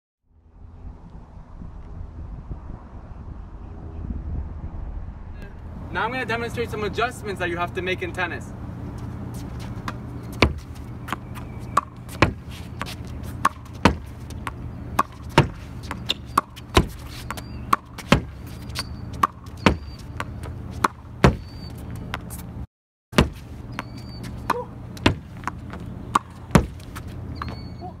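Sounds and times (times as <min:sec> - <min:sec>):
low traffic hum: 0:00.2 - 0:28.0
tennis ball bouncing: 0:08.8 - 0:22.5, 0:23.2 - 0:28.0
tennis racket hitting ball: 0:09.3 - 0:22.5, 0:23.2 - 0:27.8.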